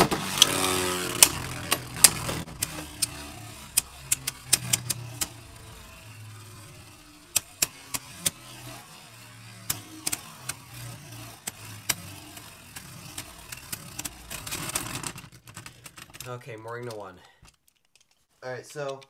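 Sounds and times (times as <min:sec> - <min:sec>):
spinning tops whirring: 0:00.0 - 0:18.9
spinning tops clicking together: 0:00.2 - 0:19.0.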